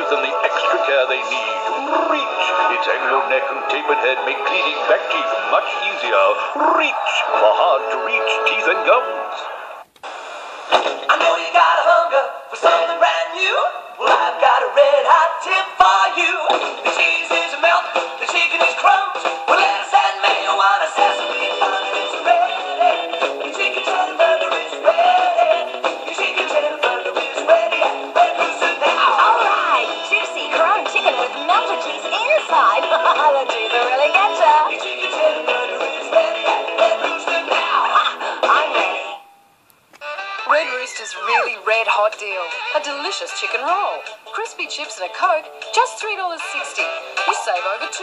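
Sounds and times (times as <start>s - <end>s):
sung jingle with music: 0.0s - 9.6s
backing music: 0.0s - 48.0s
swooping exaggerated voices: 4.3s - 7.7s, 37.5s - 39.1s.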